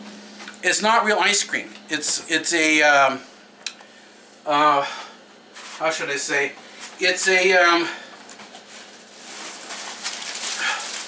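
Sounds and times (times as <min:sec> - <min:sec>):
plastic wrapping crinkling: 0:08.3 - 0:11.0.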